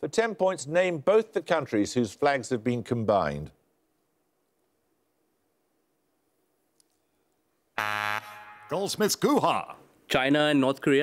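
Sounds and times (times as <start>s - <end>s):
quiz buzzer buzzing: 7.8s - 8.9s.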